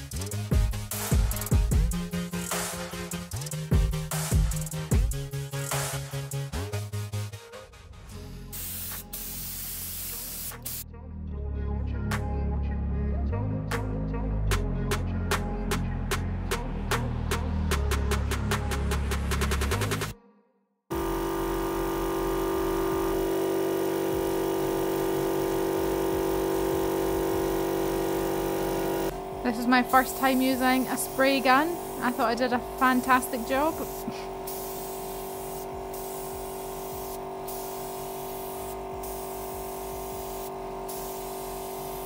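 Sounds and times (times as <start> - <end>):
spray gun hissing: 8.5 - 10.8, 20.9 - 42.0.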